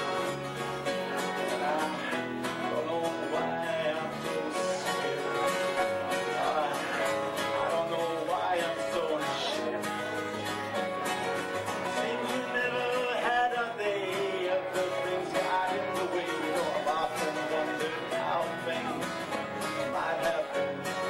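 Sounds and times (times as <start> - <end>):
live country band playing: 0.0 - 21.0.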